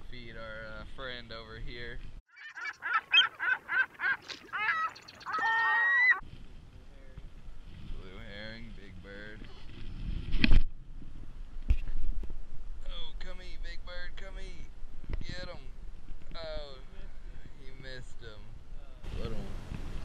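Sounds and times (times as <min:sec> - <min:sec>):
wind: 0:00.0 - 0:20.0
bird calling: 0:02.3 - 0:06.2
water noise: 0:02.3 - 0:06.3.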